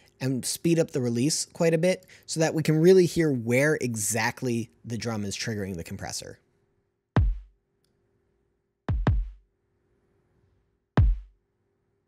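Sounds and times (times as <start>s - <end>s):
electronic kick drum: 7.2s - 7.6s, 8.9s - 9.5s, 11.0s - 11.4s.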